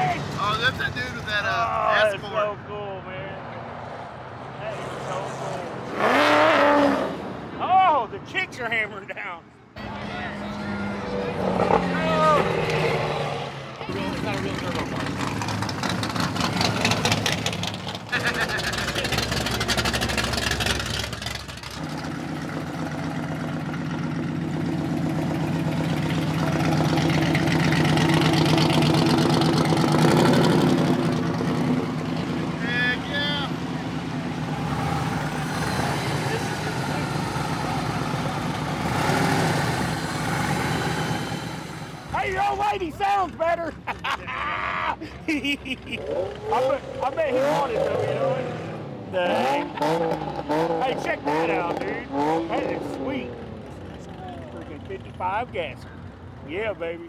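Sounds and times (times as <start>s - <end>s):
voices: 0.0s - 3.8s, 18.1s - 20.0s, 42.1s - 57.0s
car engines cruising past: 0.0s - 7.9s, 9.8s - 42.3s, 45.0s - 57.0s.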